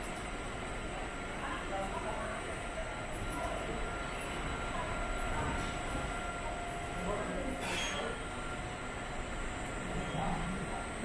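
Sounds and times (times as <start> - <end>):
faint steady tones: 0.4 - 11.0.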